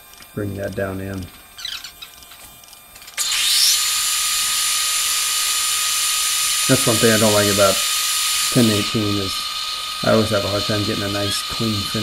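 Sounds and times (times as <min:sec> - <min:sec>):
loud mechanical hiss: 0:03.2 - 0:12.0
metal lathe whining: 0:03.2 - 0:12.0.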